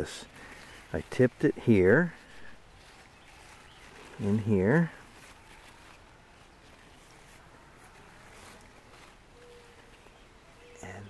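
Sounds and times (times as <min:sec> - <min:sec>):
leaves rustling: 0:00.0 - 0:11.0.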